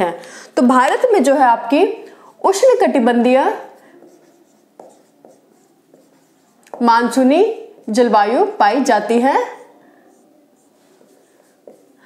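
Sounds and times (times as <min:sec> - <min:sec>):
marker pen writing on whiteboard: 0:02.4 - 0:12.0.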